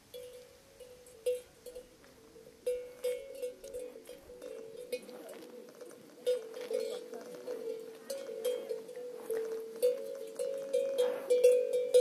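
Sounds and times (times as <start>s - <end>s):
cowbell clanking: 0.0s - 12.0s.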